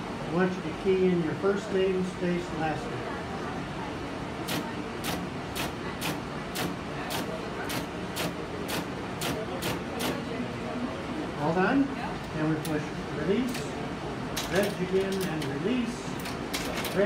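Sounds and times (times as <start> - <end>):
steady background hum: 0.0 - 17.0.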